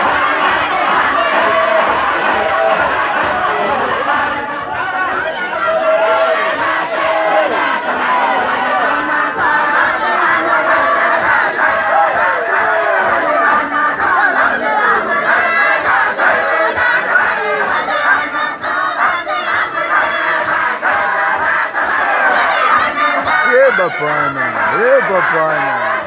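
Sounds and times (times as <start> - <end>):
men chanting in rhythm: 0.0 - 26.0.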